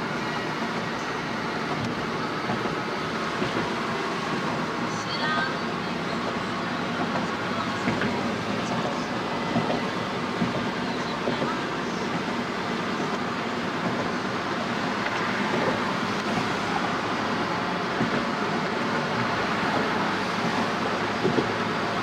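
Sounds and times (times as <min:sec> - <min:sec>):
car road noise: 0:00.0 - 0:22.0.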